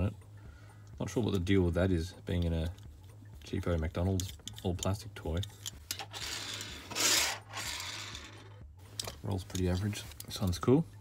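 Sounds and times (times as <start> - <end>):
toy car rolling on tabletop: 5.9 - 8.6.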